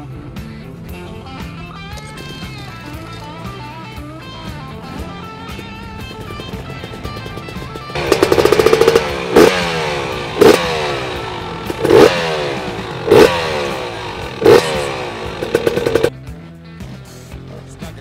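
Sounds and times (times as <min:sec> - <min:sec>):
dirt bike engine revving: 0:04.4 - 0:16.1.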